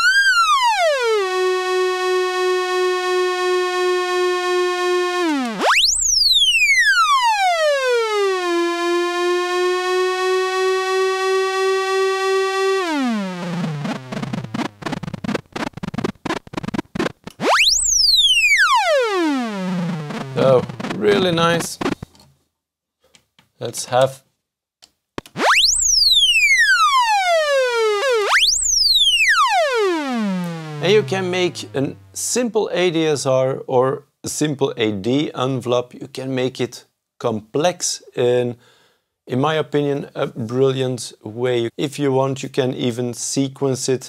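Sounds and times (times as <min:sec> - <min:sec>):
synthesizer pitch sweeping: 0:00.0 - 0:22.0, 0:25.3 - 0:32.2.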